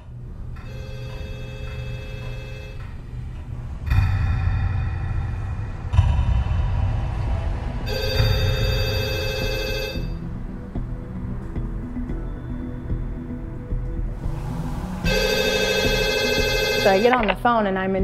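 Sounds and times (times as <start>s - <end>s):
low droning background: 0.0s - 18.0s
telephone ringing: 0.6s - 2.9s, 7.9s - 10.2s, 15.0s - 17.4s.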